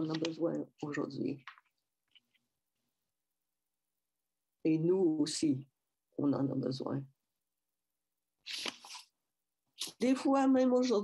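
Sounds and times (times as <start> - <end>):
person speaking: 0.0 - 2.5.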